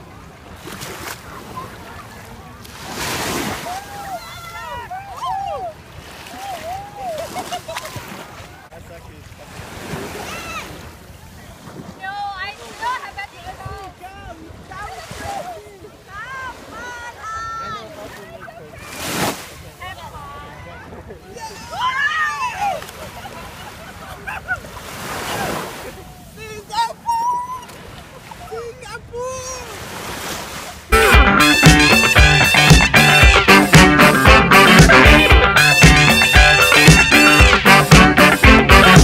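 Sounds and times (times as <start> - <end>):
small waves washing on shore: 0.0 - 31.0
wave breaking on sand: 2.4 - 8.5.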